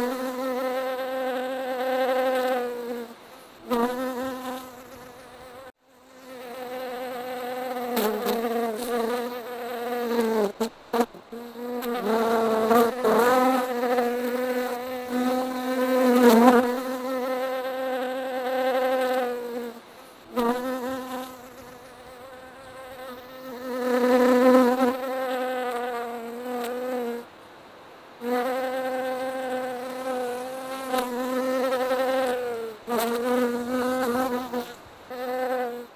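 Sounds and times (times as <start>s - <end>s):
honeybees buzzing: 0.0s - 27.1s, 28.3s - 35.9s.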